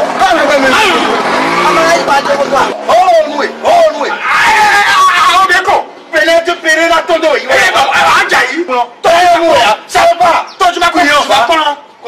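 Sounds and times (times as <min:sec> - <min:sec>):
motorbike engine revving: 0:00.0 - 0:04.0
voices: 0:00.0 - 0:12.0.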